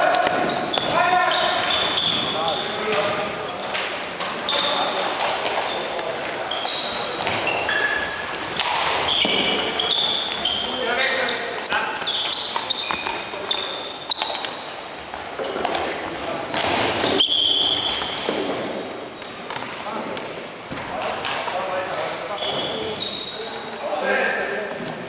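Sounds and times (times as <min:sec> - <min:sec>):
sneakers squeaking on floor: 0:00.0 - 0:20.1, 0:21.8 - 0:24.0.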